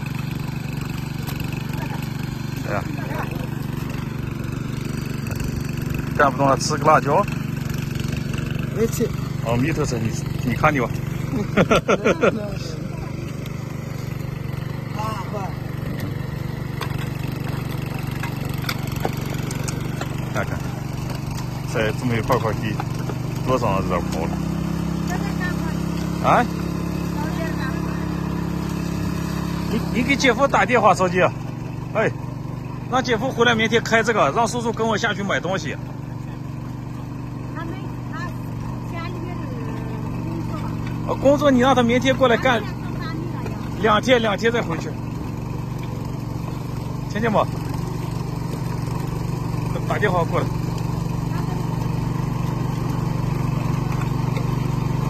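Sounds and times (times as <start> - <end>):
small engine running: 0.0 - 55.0.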